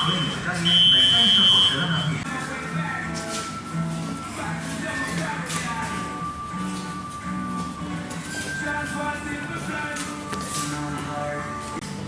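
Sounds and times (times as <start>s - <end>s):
voice or music underneath: 1.6s - 6.3s.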